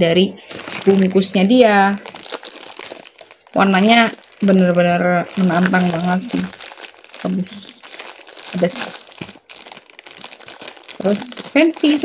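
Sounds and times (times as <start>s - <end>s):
plastic packet crinkling: 0.4s - 12.0s.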